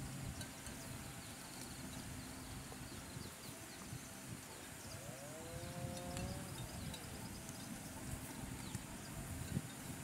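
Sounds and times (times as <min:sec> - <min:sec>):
water buffalo lowing: 0:04.4 - 0:09.1.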